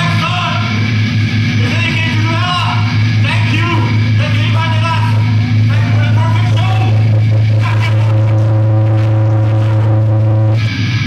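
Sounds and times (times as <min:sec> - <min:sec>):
electric bass and guitar drone: 0:00.0 - 0:11.0.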